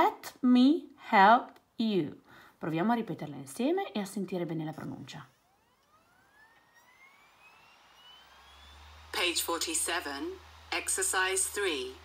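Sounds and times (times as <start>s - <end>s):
low hum: 5.3s - 12.0s
disc drive spinning up: 5.4s - 12.0s.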